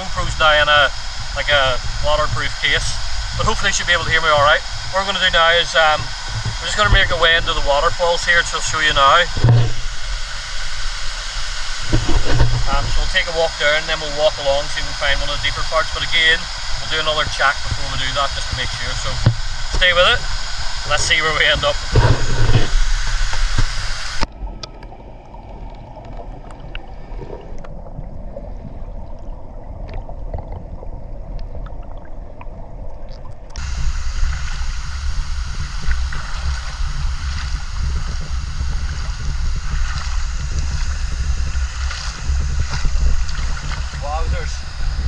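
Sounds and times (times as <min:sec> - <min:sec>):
low rumble from camera housing: 0:00.0 - 0:45.0
muffled underwater water sound: 0:00.0 - 0:45.0
running stream water: 0:00.0 - 0:45.0
faint underwater clicks: 0:16.0 - 0:45.0.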